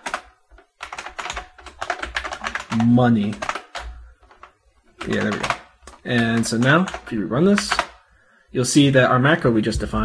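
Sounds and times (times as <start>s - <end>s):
typing on computer keyboard: 0.0s - 8.0s.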